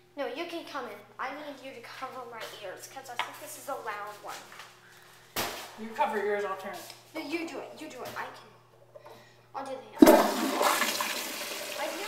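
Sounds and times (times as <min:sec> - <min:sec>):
toilet flushing: 0:10.0 - 0:12.0.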